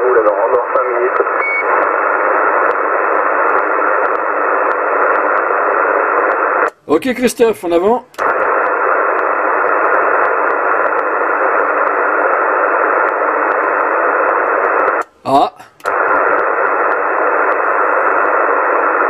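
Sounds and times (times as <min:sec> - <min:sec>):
radio static hiss: 0:00.0 - 0:19.0.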